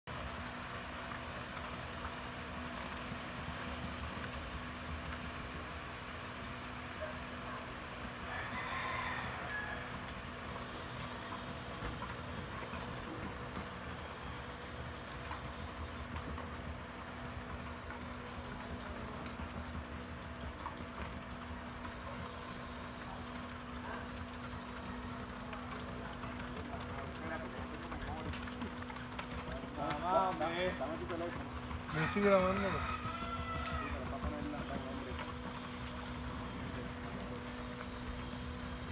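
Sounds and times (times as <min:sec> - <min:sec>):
horse hooves clip-clopping: 0:00.1 - 0:38.9.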